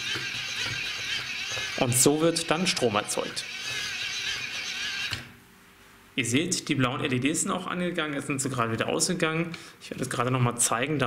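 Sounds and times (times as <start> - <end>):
hand-crank dynamo whirring: 0.0 - 5.3.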